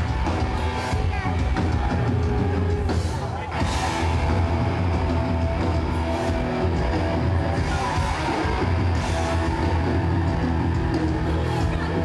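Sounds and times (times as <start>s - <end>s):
distorted guitars and bass: 0.0s - 12.0s
drums: 0.0s - 12.0s.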